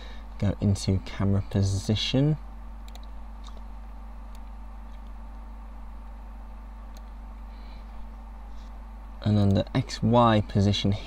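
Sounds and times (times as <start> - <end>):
low electrical hum: 0.0 - 11.0
faint mouse clicks: 2.8 - 3.7.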